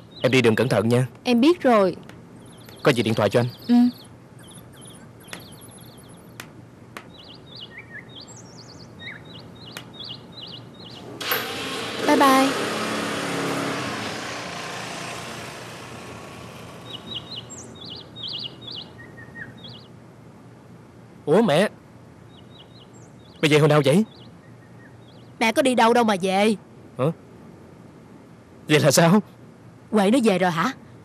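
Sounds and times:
small birds chirping: 0.0s - 20.0s, 21.3s - 27.2s
motorbike pulling away: 10.8s - 18.5s.

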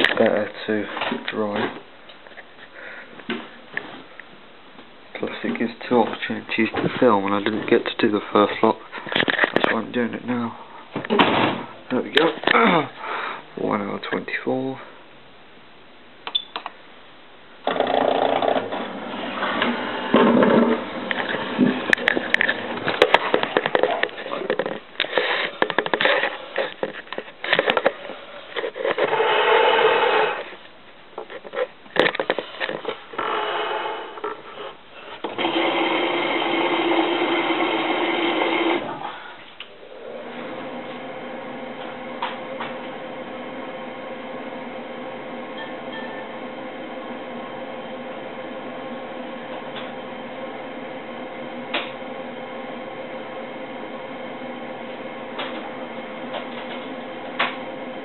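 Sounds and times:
washer dryer running with knocks: 17.7s - 24.7s, 40.2s - 58.0s.

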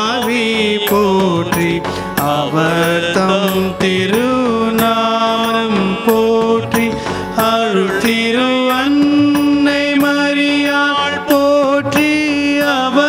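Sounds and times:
chant-like hymn singing: 0.0s - 11.2s
instrumental accompaniment with beat: 0.0s - 13.0s.

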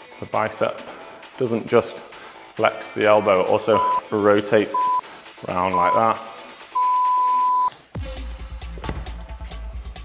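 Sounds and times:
interval timer beeps: 3.8s - 4.1s, 4.7s - 5.0s, 5.7s - 6.2s, 6.8s - 7.7s.

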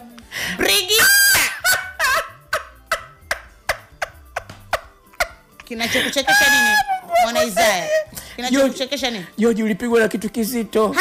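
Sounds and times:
ticking background beat: 1.6s - 8.8s
man's high-pitched squealing laughter: 6.2s - 8.1s.

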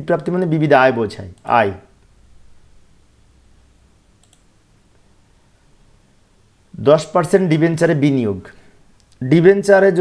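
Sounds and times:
background hiss: 0.0s - 10.0s
faint mouse clicks: 4.2s - 5.0s, 9.0s - 9.2s.

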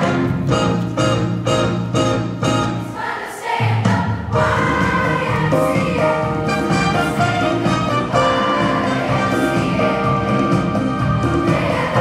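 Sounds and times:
musical accompaniment: 0.0s - 12.0s
children's choir singing: 2.8s - 12.0s.

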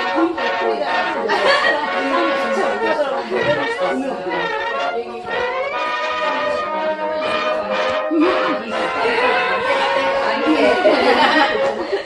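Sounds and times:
background music: 0.0s - 12.0s
people chattering: 0.0s - 12.0s.

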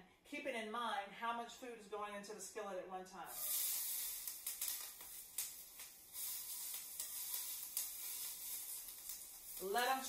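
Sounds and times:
peppers sizzling in a skillet: 3.3s - 10.0s.

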